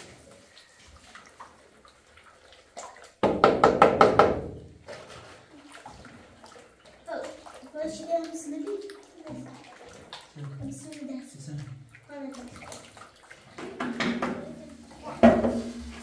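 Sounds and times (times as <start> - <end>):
hand stirring wet plaster: 0.0 - 3.9, 4.7 - 16.0.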